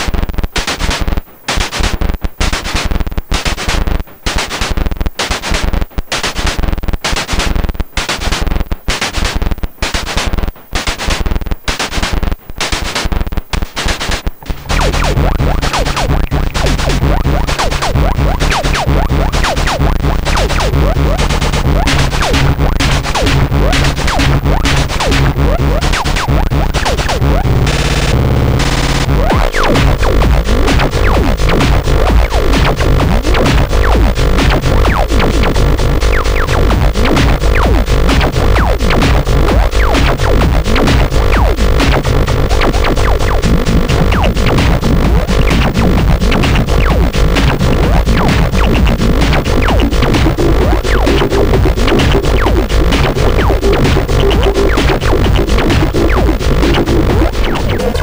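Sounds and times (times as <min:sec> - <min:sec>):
distorted electronic drum pattern: 0:00.0 - 0:58.0
heavy low synth layer: 0:14.4 - 0:58.0.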